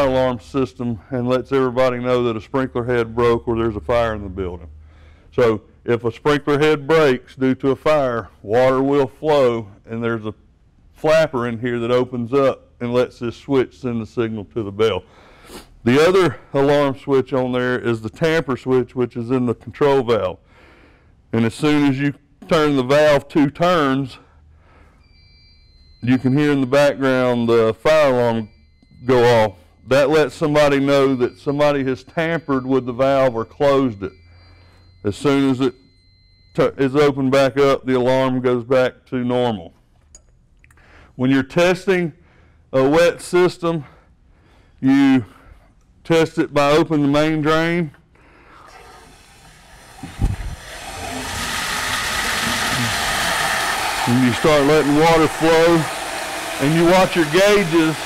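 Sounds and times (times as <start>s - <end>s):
faint fire alarm tone: 25.0s - 37.7s
water rushing through drain: 48.7s - 58.0s.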